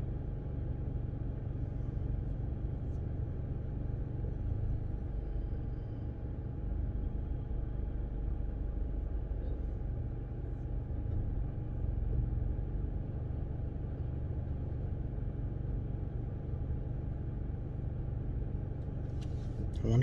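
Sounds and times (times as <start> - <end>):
car engine idling: 0.0 - 20.0
faint steady whine: 0.0 - 20.0.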